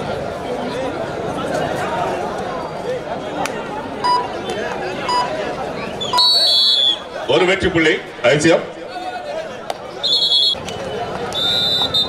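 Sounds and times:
crowd chatter: 0.0s - 12.0s
short high beeps: 5.1s - 5.4s
referee's whistle blast: 6.0s - 7.1s, 10.0s - 12.0s.

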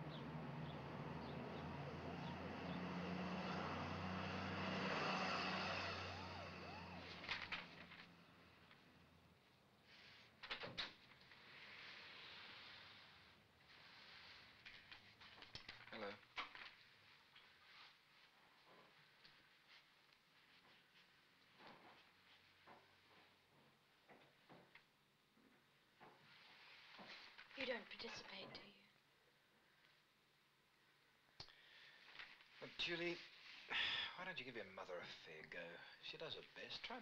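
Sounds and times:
truck driving past: 0.0s - 9.0s
film soundtrack hum and hiss: 0.0s - 37.0s.

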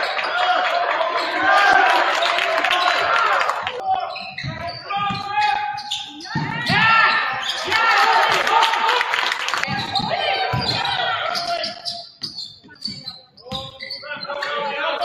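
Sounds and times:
voices echoing in a hall: 0.0s - 15.0s
sneakers squeaking on court: 3.9s - 7.7s, 9.6s - 15.0s
basketball bouncing: 6.2s - 7.4s, 9.6s - 11.5s.

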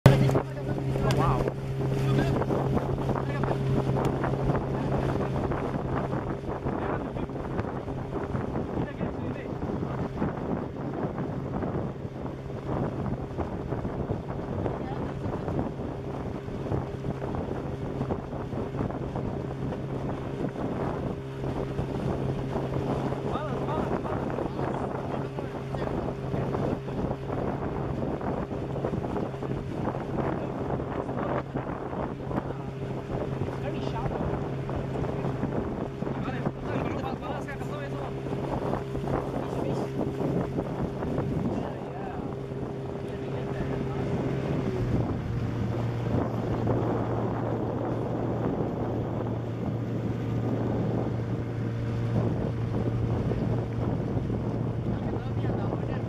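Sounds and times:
outboard motor running: 0.0s - 56.0s
wind buffeting microphone: 0.0s - 56.0s.

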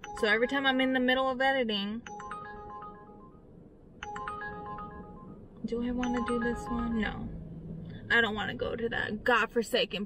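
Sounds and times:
smartphone alert chime: 2.1s - 3.4s, 4.0s - 7.1s.

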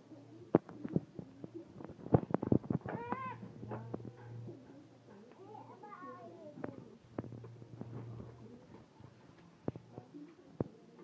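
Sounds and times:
low steady hum: 0.0s - 10.7s
high-pitched meow-like cry: 2.9s - 3.4s.

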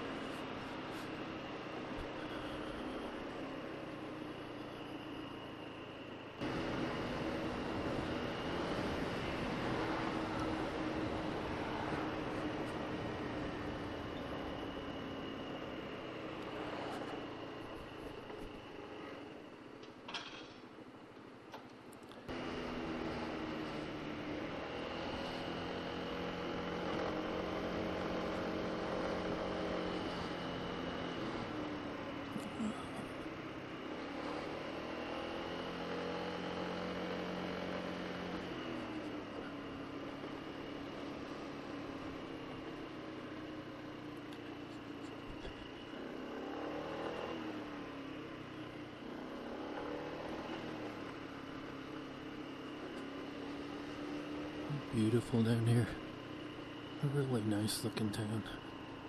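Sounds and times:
scooter engine running: 0.0s - 19.5s, 22.2s - 59.0s
wind and road noise: 0.0s - 59.0s.

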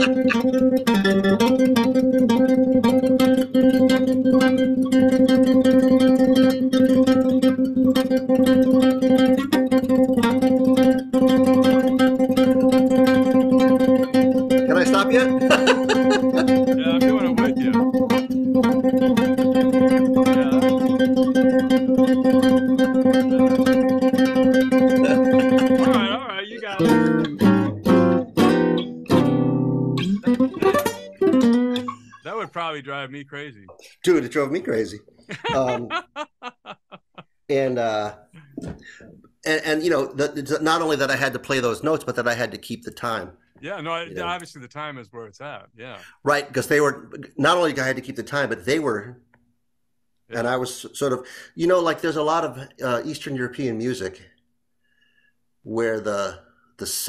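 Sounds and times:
classical guitar plucking: 0.0s - 32.3s.

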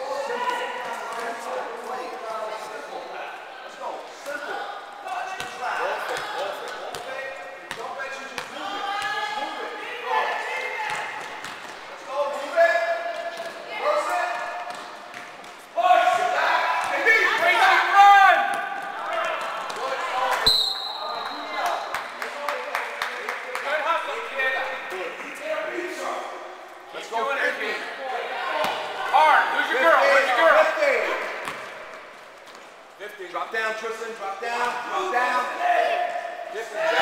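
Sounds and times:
referee's whistle blast: 20.4s - 21.5s.

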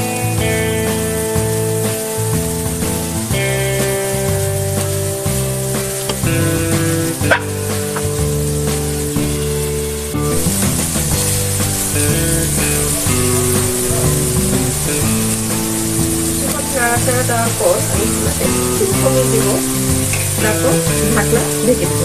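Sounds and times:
background music with held notes: 0.0s - 22.0s
food sizzling in a wok: 0.0s - 22.0s
spatula knocking on pan: 4.8s - 9.4s.

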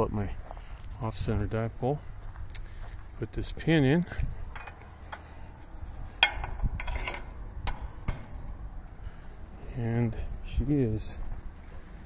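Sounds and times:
metal clicks and knocks: 4.5s - 5.3s, 6.2s - 8.3s.

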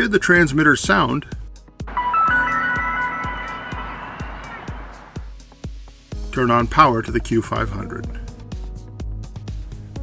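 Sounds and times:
background music with steady beat: 1.5s - 10.0s
electronic startup tones: 1.9s - 5.2s.

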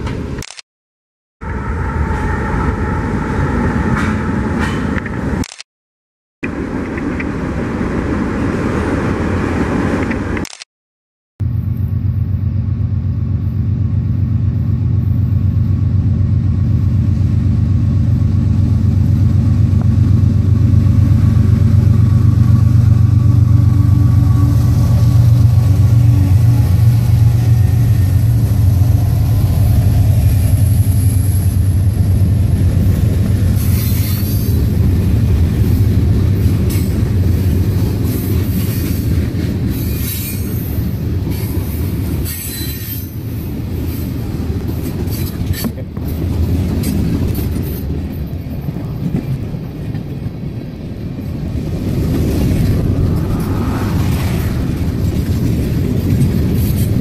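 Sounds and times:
diesel locomotive engines droning: 1.4s - 5.5s, 11.4s - 57.0s
wheels clicking over rail joints: 36.2s - 51.0s
wheel squeal: 42.2s - 43.2s.

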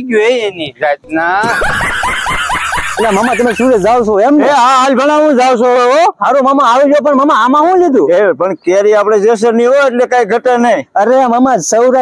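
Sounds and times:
high-pitched snickering laugh: 1.4s - 4.0s.

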